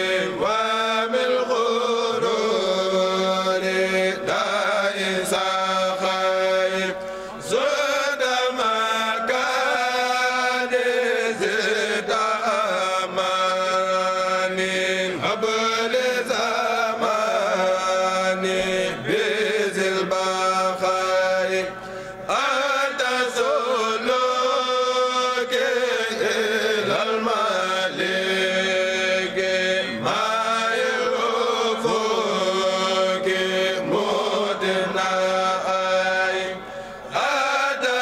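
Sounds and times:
men chanting together: 0.0 - 21.7, 22.3 - 38.0.

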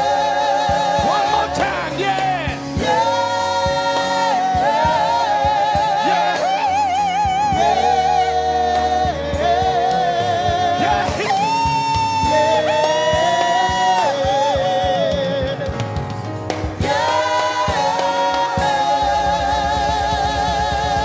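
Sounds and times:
choir singing in harmony: 0.0 - 21.0
live band accompaniment: 0.0 - 21.0.

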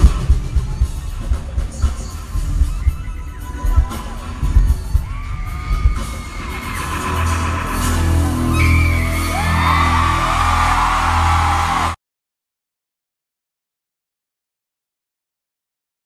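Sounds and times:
amplified pop music: 0.0 - 12.0
crowd screaming and whooping: 2.8 - 12.0.

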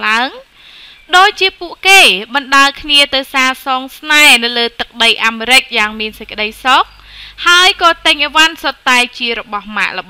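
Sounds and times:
woman narrating: 0.0 - 0.5, 1.1 - 10.0.

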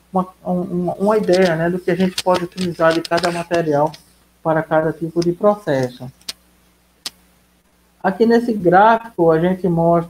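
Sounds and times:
faint steady hum: 0.0 - 10.0
computer mouse clicks: 1.0 - 4.1, 5.2 - 6.4.

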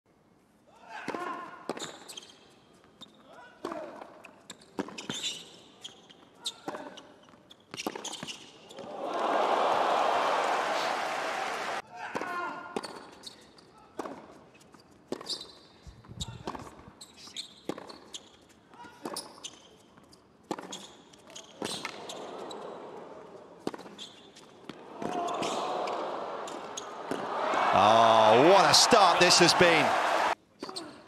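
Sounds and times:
crowd cheering: 8.8 - 11.8, 24.8 - 30.4.

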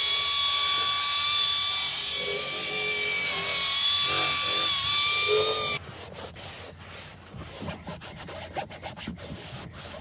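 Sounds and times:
cloth wiping textured panel: 5.8 - 10.0.

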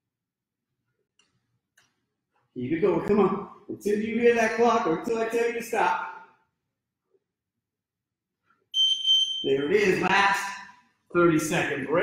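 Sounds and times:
man speaking: 2.6 - 6.4, 9.4 - 12.0.

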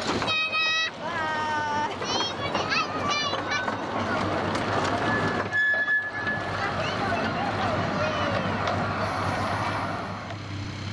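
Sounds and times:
miniature train wheels on track: 0.0 - 10.6
high wheel squeal: 4.8 - 7.3.

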